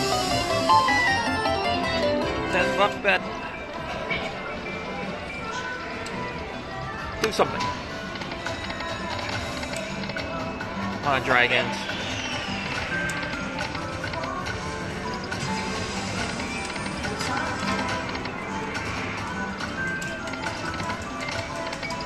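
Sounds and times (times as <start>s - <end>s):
slot machine music and reel sounds: 0.0s - 22.0s.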